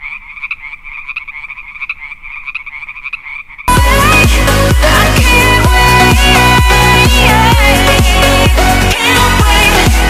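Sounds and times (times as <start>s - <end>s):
music: 3.7s - 10.0s.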